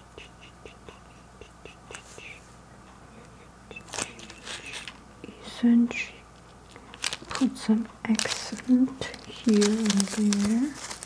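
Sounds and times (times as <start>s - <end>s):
person murmuring softly: 0.0s - 6.3s
breathy whisper: 0.0s - 7.0s.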